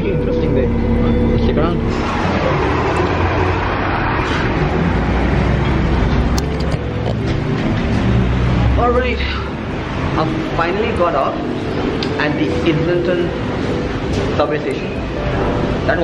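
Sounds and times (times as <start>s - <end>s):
indistinct voices: 0.0s - 16.0s
traffic rumble: 0.0s - 16.0s.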